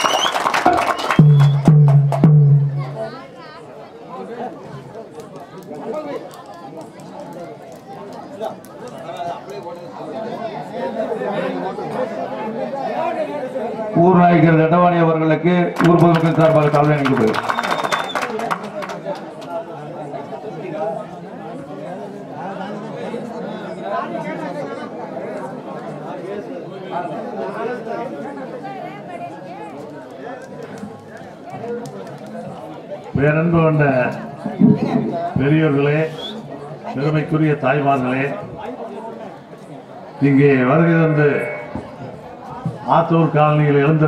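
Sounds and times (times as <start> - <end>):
men talking over one another: 30.3 - 44.0.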